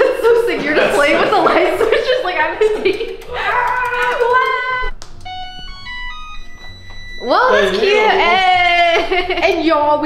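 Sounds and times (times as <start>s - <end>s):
electronic power-on beeping tune: 5.2s - 8.8s.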